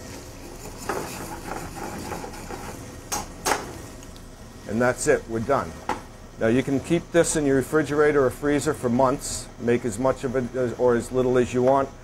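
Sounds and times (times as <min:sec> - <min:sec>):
spoon stirring in a pan: 0:00.2 - 0:02.9
spoon scraping: 0:00.4 - 0:02.8.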